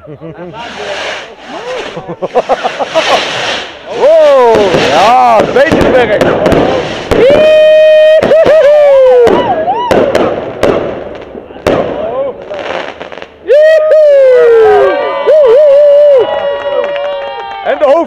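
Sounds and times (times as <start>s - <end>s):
firework bangs and crackling: 0.5s - 14.9s
whistling firework rockets: 0.5s - 16.2s.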